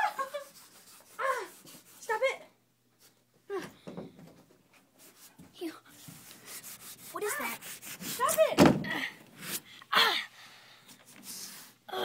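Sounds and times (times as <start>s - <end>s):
faint rubbing and rustling: 4.1s - 8.6s, 10.8s - 11.9s.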